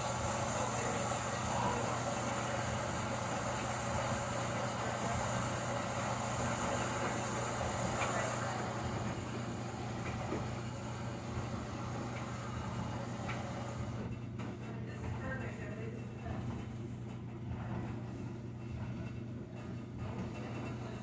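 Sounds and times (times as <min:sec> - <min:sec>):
washing machine humming and rushing: 0:00.0 - 0:21.0.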